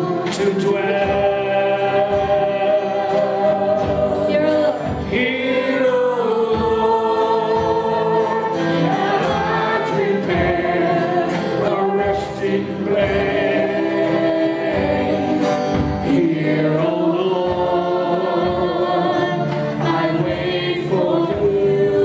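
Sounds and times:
acoustic guitar: 0.0 - 22.0
woman singing: 2.7 - 12.7.

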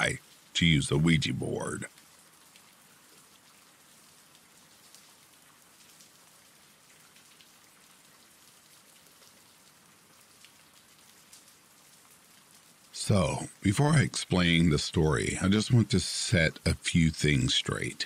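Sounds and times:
faint steady rain: 0.0 - 18.0
ticks of raindrops: 0.0 - 18.0.

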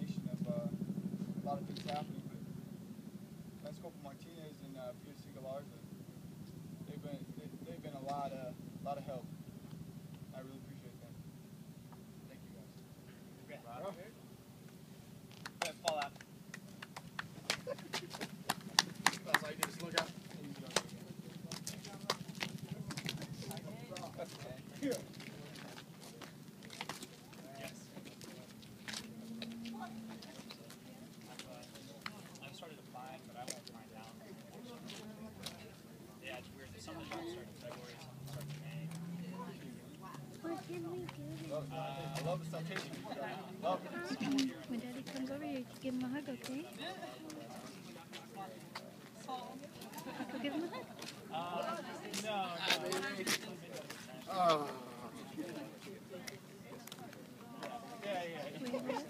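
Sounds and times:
faint voices: 17.9 - 59.0.

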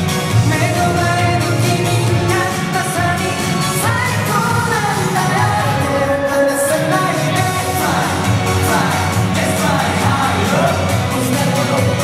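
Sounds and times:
amplified pop music with low beat: 0.0 - 12.0
men singing into microphones: 0.3 - 12.0.

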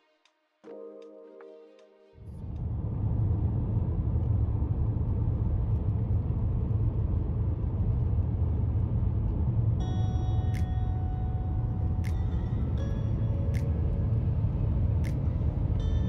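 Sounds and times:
car driving on open road: 2.2 - 16.0
faint steady tones: 8.8 - 16.0
sharp click: 13.5 - 14.0.

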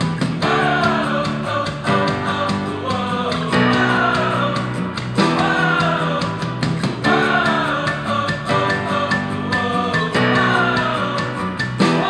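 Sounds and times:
rock song through speaker: 0.0 - 12.0.

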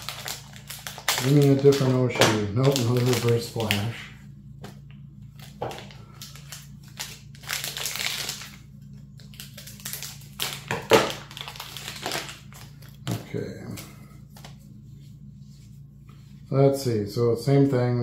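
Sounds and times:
packaging clicks: 0.0 - 2.0, 2.6 - 3.9, 5.4 - 8.6
cardboard packaging crinkling: 0.0 - 14.6.

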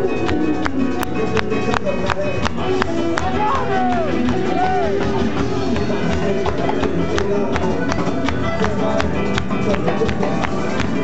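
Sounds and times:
live band music: 0.0 - 11.0
percussion strikes: 0.0 - 11.0.

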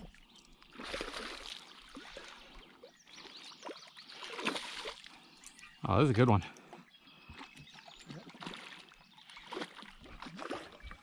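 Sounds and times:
water lapping around boat: 0.0 - 11.0.

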